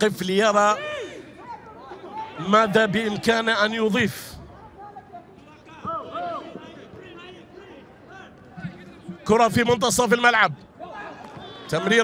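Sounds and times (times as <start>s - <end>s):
stadium ambience: 0.0s - 12.0s.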